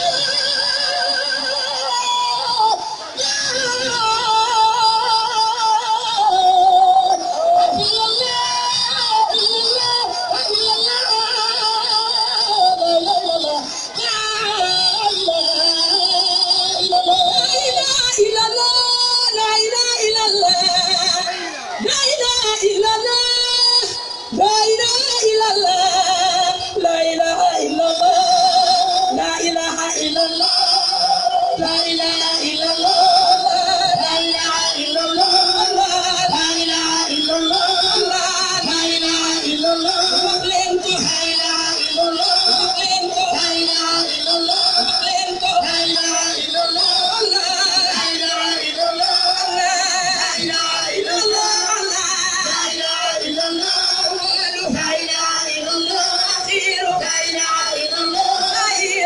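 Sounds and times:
sustained accompanying line: 0.0 - 59.0
woman singing: 0.0 - 59.0.

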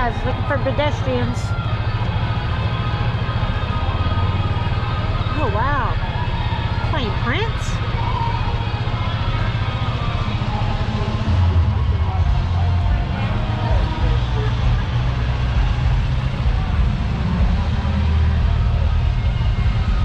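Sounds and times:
golf cart driving: 0.0 - 20.0
music: 6.2 - 20.0.

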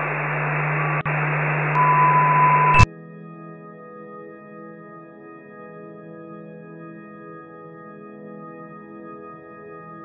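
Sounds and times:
low hum: 0.0 - 2.9
tv static hiss: 0.0 - 2.9
high beep tone: 1.0 - 2.9.

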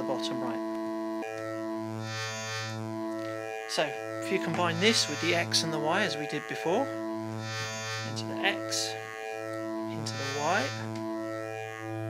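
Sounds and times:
synthesizer low drone: 0.0 - 12.0
bright upper buzz: 0.6 - 12.0.

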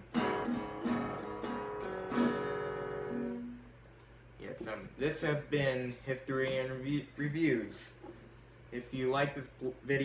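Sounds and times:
acoustic guitar strumming: 0.0 - 3.8.

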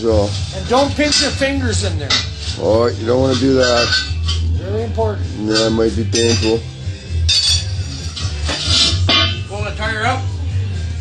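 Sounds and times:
background music: 0.0 - 11.0
metal bars scraping wheel rim: 0.7 - 4.5, 5.4 - 6.6, 7.3 - 9.5.

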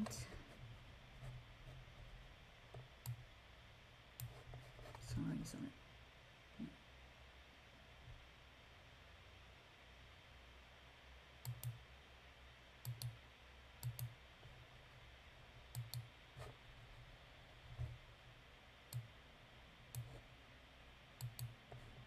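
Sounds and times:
faint room hiss: 0.0 - 22.0.

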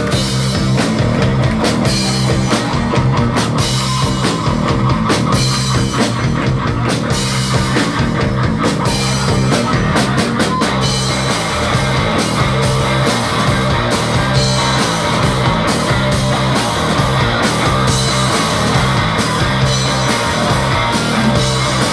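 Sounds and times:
distorted electric guitar: 0.0 - 21.9
drum kit with crashing cymbals: 0.0 - 21.9
electric bass: 0.0 - 21.9.

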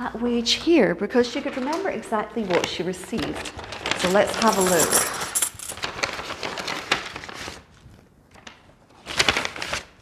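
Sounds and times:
paper packet rustling and crinkling: 2.4 - 10.0.

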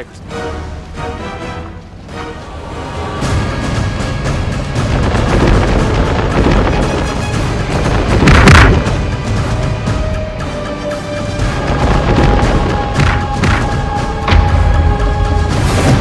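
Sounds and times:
dramatic action music: 0.0 - 16.0.

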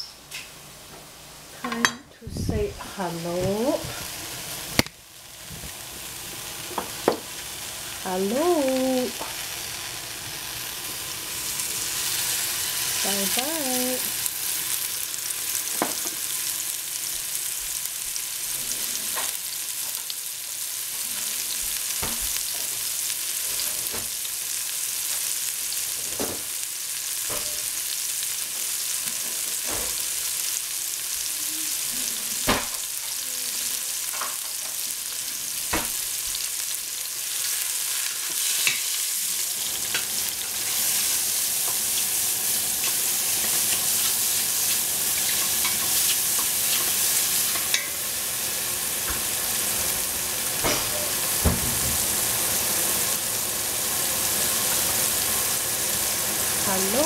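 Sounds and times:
mushrooms sizzling in a pot: 0.0 - 57.0.

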